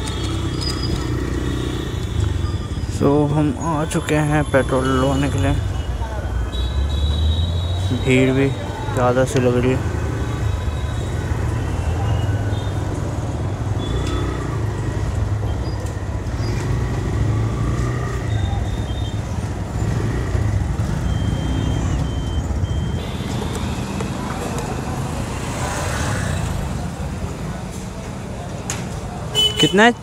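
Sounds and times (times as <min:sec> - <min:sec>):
people talking: 0:02.9 - 0:06.5, 0:07.8 - 0:09.9.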